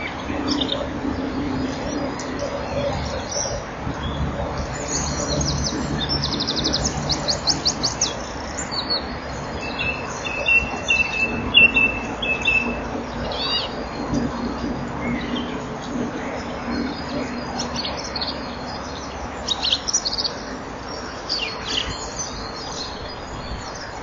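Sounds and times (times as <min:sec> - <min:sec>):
small bird singing: 0:00.0 - 0:24.0.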